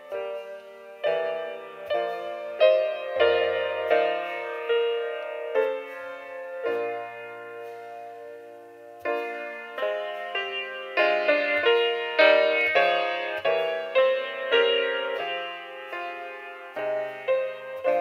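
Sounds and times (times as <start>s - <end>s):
grand piano playing: 0.0s - 18.0s.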